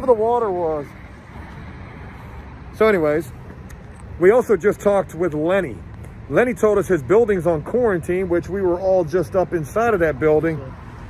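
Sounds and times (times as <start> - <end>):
city street traffic rumble: 0.0 - 11.0.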